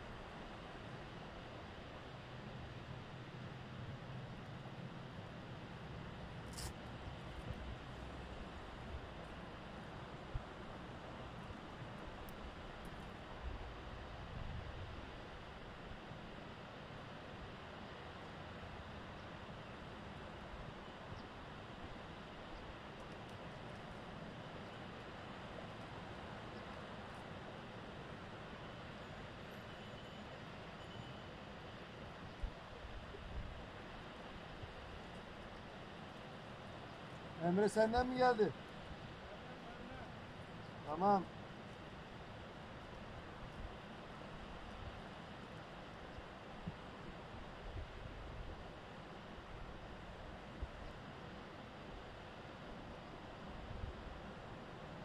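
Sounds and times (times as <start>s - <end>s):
wind hiss: 5.1s - 18.0s.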